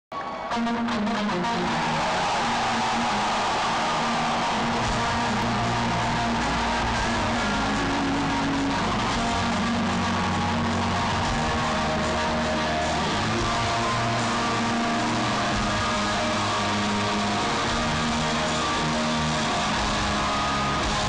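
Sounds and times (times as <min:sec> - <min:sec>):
electric guitar notes: 0:00.3 - 0:21.0
heavy bass: 0:01.2 - 0:21.0.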